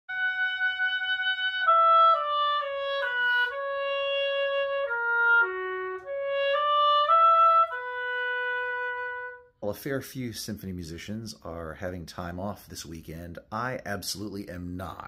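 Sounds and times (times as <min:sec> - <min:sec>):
oboe playing slow melody: 0:00.1 - 0:09.6.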